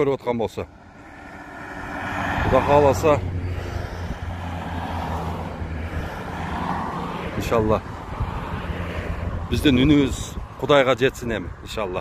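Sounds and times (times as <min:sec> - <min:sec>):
cars driving past: 0:00.4 - 0:12.0.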